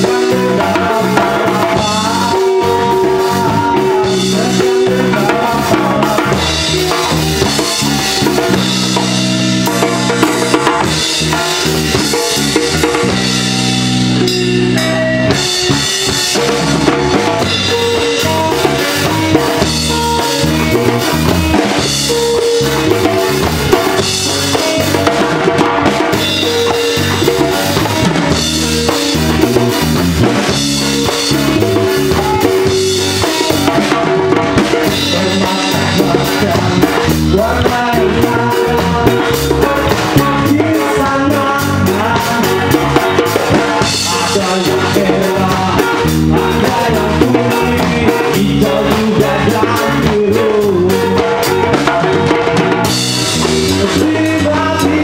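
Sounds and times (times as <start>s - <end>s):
bass guitar: 0.0s - 55.0s
djembe: 0.0s - 55.0s
drum kit: 0.0s - 55.0s
electric guitars: 0.0s - 55.0s.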